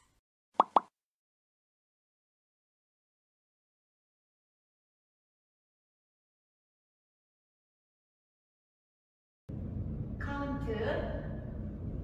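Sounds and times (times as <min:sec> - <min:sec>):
cartoon plop sound effects: 0:00.6 - 0:00.9.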